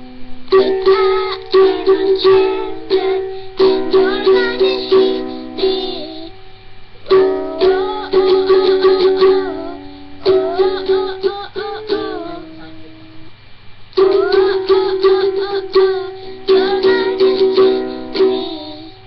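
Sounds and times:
girl singing: 0.0s - 13.4s, 14.0s - 19.0s
ukulele strumming chords: 0.0s - 13.4s, 14.0s - 19.0s.

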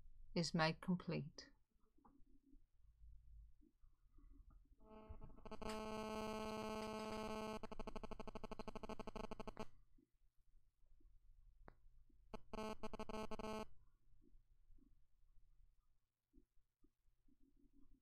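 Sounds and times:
buzzing electronic tone: 4.9s - 9.6s, 12.4s - 13.7s.

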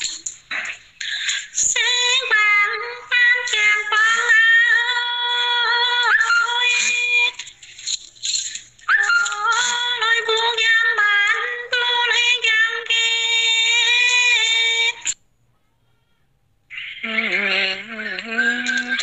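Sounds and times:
woman singing unaccompanied: 1.4s - 7.5s, 8.9s - 15.2s, 16.9s - 19.0s.

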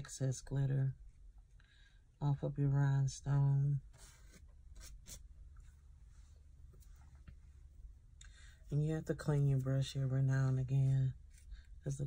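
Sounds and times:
brush scratching: 3.9s - 5.7s.

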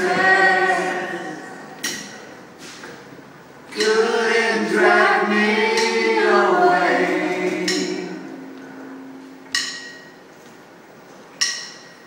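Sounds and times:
bright percussive hit: 3.8s - 10.2s.

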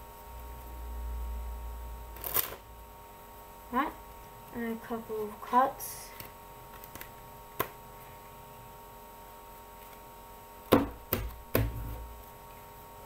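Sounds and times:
faint hum: 0.0s - 13.0s
playing cards clicking: 6.2s - 7.7s.

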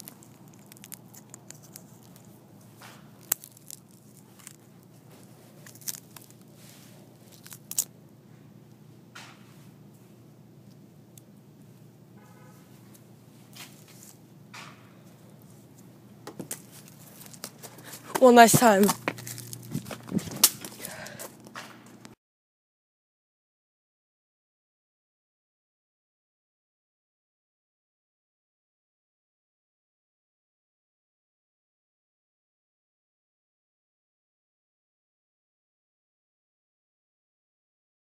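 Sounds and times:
phone plastic and glass cracking: 0.0s - 4.7s, 5.6s - 6.5s, 7.3s - 7.9s, 16.3s - 22.0s
knocks and rustles: 16.2s - 22.0s.

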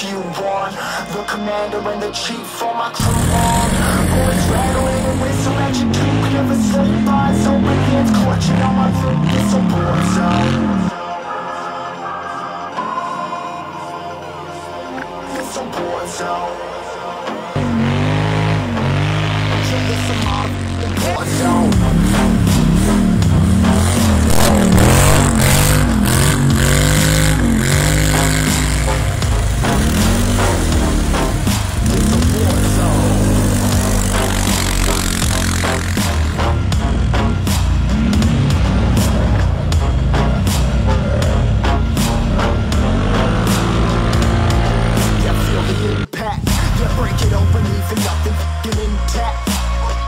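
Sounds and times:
atv engines revving: 3.0s - 11.0s, 17.4s - 47.8s.

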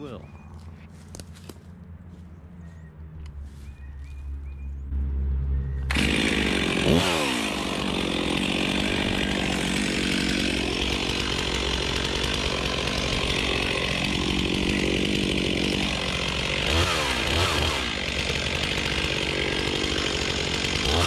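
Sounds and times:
chainsaw cutting tree trunk: 5.9s - 21.0s.

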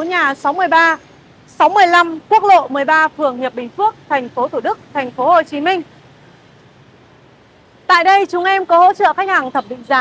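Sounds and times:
woman speaking: 0.0s - 5.9s, 7.9s - 10.0s
motorbikes and cars on road: 0.0s - 10.0s.

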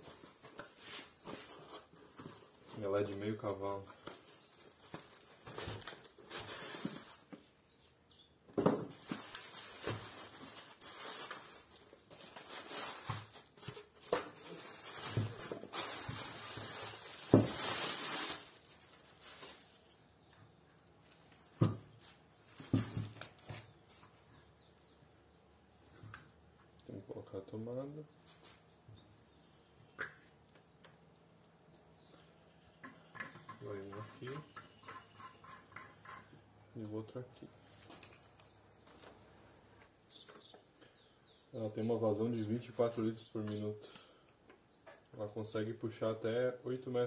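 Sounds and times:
cardboard and plastic bag rustling: 0.0s - 7.3s, 8.6s - 20.0s, 20.8s - 24.0s.

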